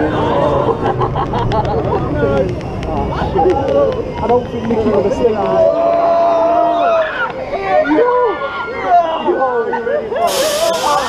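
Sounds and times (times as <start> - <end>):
water jets spraying: 10.3 - 11.0.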